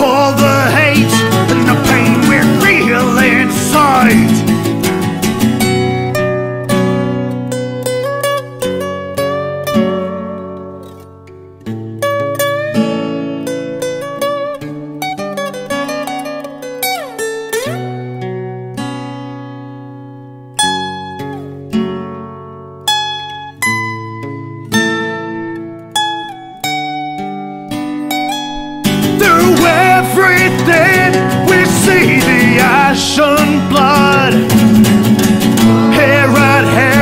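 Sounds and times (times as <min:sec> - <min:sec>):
acoustic guitar playing: 0:00.0 - 0:37.0.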